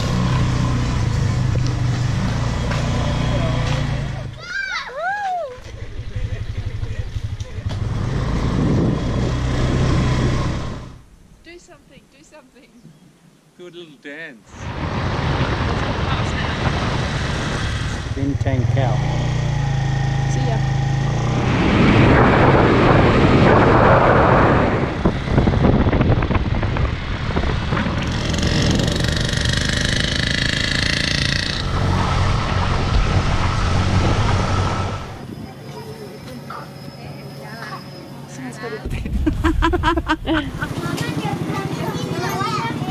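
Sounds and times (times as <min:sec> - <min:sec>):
small motorbike engine running: 0:05.7 - 0:10.9, 0:16.6 - 0:21.4, 0:27.2 - 0:36.0
wind rushing over microphone: 0:07.7 - 0:11.0, 0:14.5 - 0:30.4, 0:31.2 - 0:35.7.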